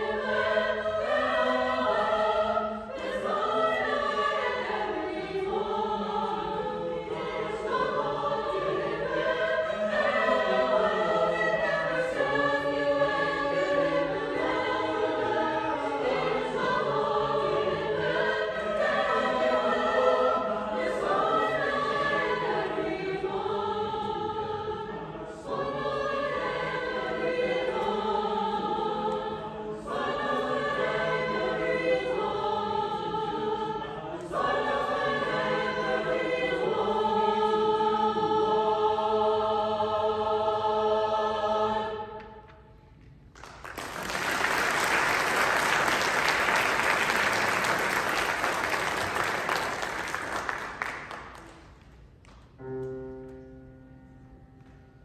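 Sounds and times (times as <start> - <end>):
mixed choir singing: 0.0 - 42.8, 43.7 - 51.4.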